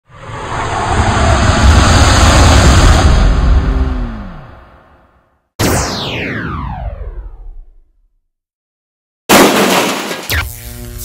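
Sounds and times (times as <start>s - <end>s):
rushing swell with deep rumble: 0.0s - 5.1s.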